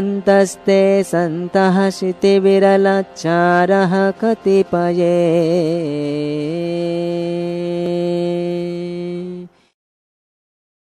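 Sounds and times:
person chanting a hymn: 0.0s - 9.6s.

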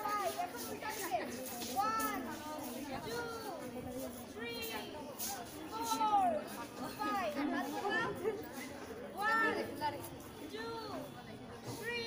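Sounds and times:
girls calling out and chattering: 0.0s - 12.0s.

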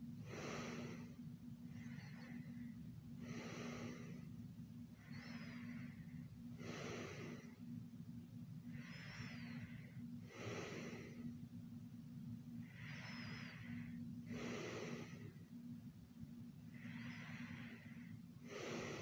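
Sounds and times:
steady low hum: 0.0s - 19.0s
heavy breathing of sleeper: 0.2s - 7.8s, 8.6s - 11.7s, 12.4s - 19.0s.

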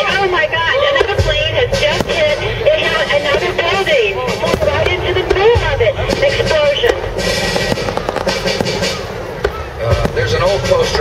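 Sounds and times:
fireworks bursting: 0.0s - 11.0s.

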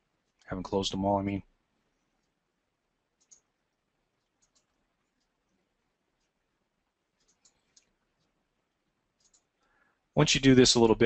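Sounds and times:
faint computer mouse clicks: 3.2s - 3.5s, 4.2s - 5.5s, 7.2s - 8.4s, 9.2s - 9.8s.

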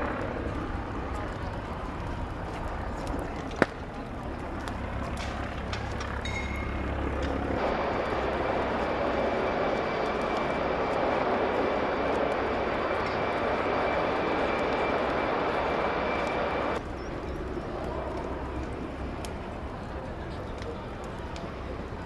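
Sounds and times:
engine drone: 0.0s - 22.0s
high whine: 1.8s - 17.0s
rushing noise: 7.5s - 16.8s.

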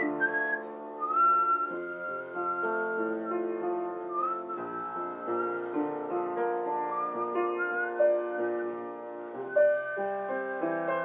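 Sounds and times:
person whistling a melody: 0.0s - 11.0s
upright piano chords: 0.0s - 11.0s.

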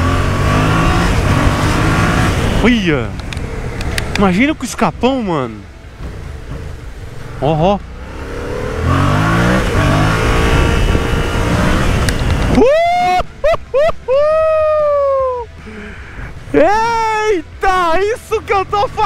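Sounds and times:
motorcycle engine accelerating: 0.0s - 2.7s, 6.0s - 12.6s
person whooping: 12.6s - 15.5s.

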